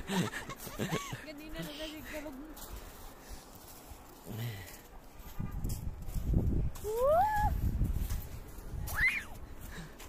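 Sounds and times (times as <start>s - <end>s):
child squealing: 6.9s - 7.5s, 8.9s - 9.4s
child yelping: 6.9s - 7.5s.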